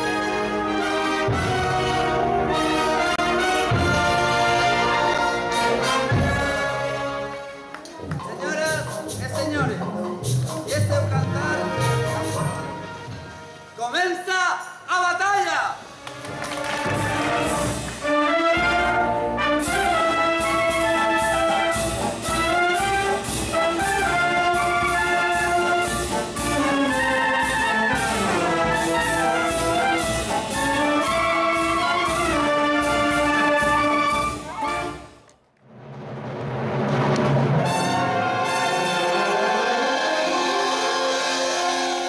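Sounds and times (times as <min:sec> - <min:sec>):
wind band playing: 0:00.0 - 0:14.0, 0:15.8 - 0:35.3, 0:36.5 - 0:42.0
percussion beat: 0:07.8 - 0:13.1, 0:16.2 - 0:18.9.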